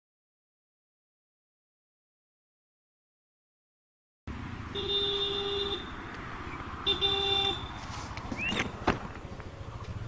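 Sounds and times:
low traffic rumble: 4.3 - 10.0
vehicle horn toot: 4.7 - 6.0, 6.8 - 7.9.

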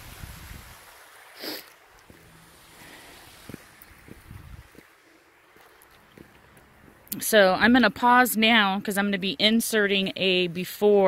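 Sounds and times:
wind on microphone: 0.0 - 1.0, 3.4 - 4.8
faint flowing water: 0.0 - 11.0.

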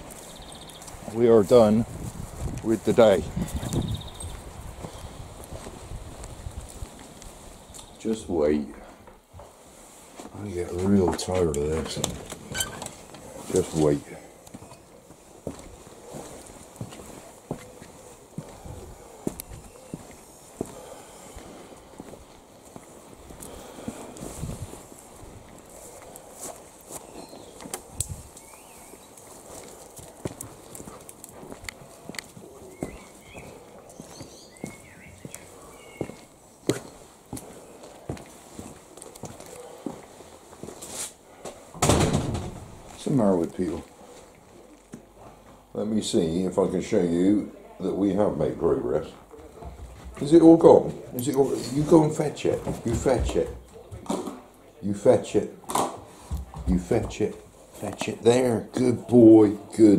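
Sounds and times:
footsteps on concrete steps: 0.0 - 8.2, 9.0 - 41.8, 49.0 - 54.5, 55.7 - 58.2
person speaking: 45.7 - 54.0.

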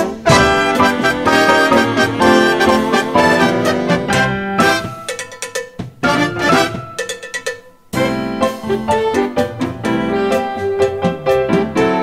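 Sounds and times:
big band brass chord: 0.0 - 5.1, 6.0 - 6.9.

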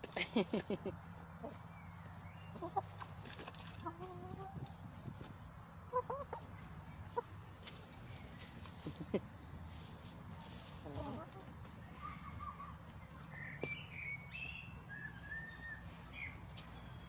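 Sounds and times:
chickens clucking: 0.0 - 17.0.

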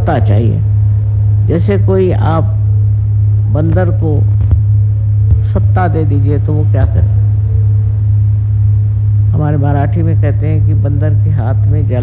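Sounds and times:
loud low electrical hum: 0.0 - 12.0.

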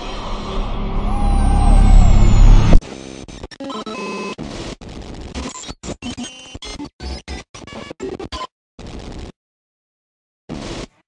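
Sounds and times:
electronic whoosh over deep rumble: 0.0 - 2.8.

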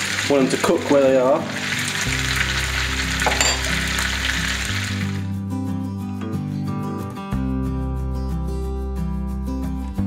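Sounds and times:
butter sizzling in skillet: 0.0 - 5.3
guitar music: 1.5 - 10.0.

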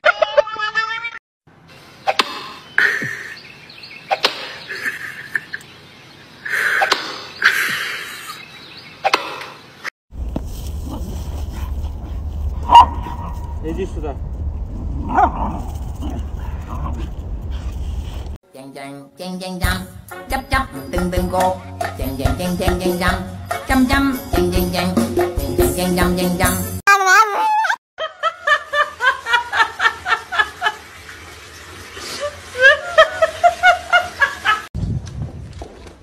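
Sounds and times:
high-pitched giggling: 0.0 - 1.2
small dog barking: 12.6 - 13.5.

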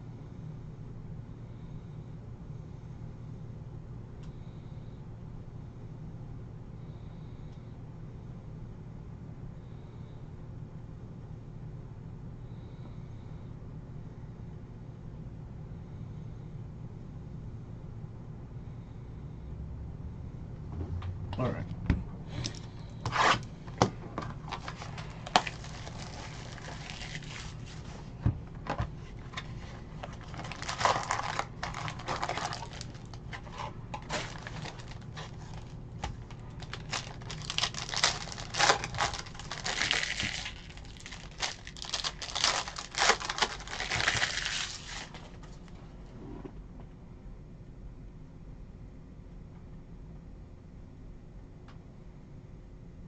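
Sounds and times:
foil packs ripping and crinkling: 24.3 - 27.9, 29.1 - 45.4
cardboard box tearing open: 30.2 - 35.6, 36.6 - 45.2.

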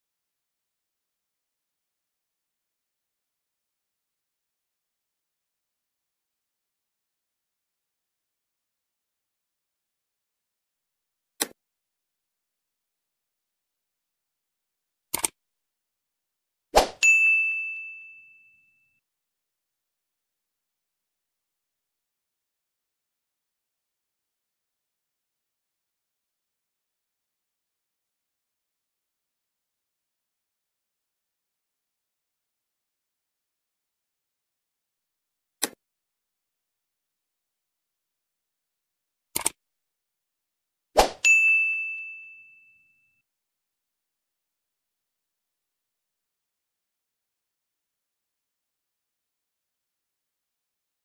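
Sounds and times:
quick double click: 15.1 - 15.4, 35.6 - 35.8, 39.4 - 39.6
notification bell chime: 17.0 - 18.6, 41.2 - 42.8.

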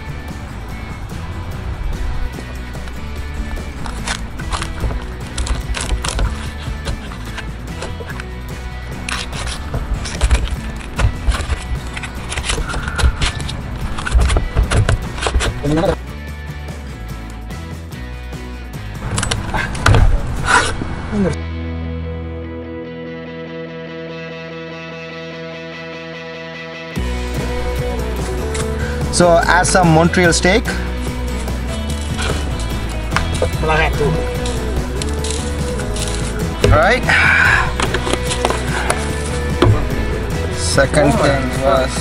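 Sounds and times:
background music: 0.0 - 42.0.

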